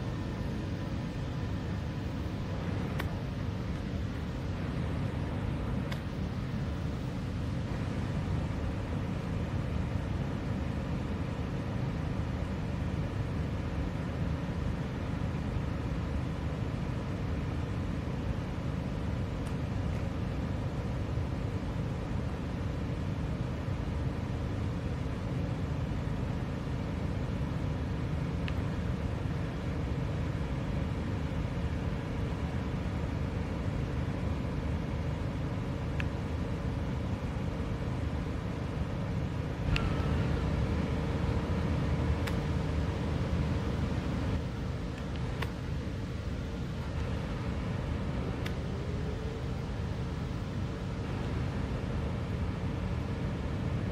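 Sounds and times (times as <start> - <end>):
faint hum: 0.0 - 53.9
outdoor background rumble: 0.0 - 53.9.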